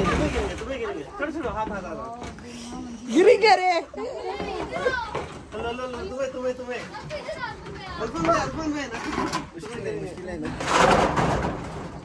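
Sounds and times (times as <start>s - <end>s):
metal roofing sheet scraping: 10.5s - 12.0s.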